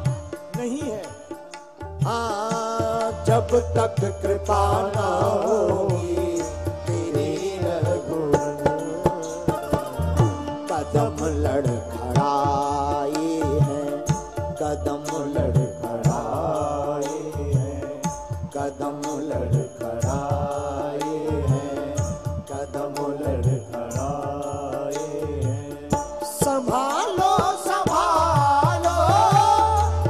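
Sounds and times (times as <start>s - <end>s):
drum beats: 0.0s - 30.0s
man singing devotional song: 0.0s - 30.0s.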